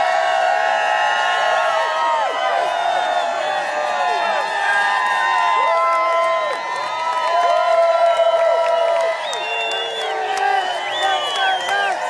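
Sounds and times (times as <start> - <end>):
stadium crowd cheering and screaming: 0.0 - 12.0.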